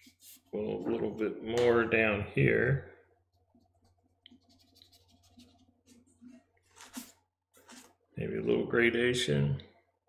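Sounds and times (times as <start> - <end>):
brush scratching on paper: 0.0 - 0.6, 3.3 - 7.9
tissue rustling on paper: 4.7 - 8.0.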